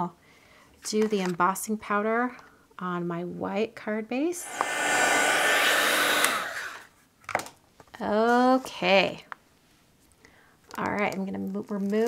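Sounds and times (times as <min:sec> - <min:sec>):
heat tool blowing hot air: 0:04.4 - 0:06.9.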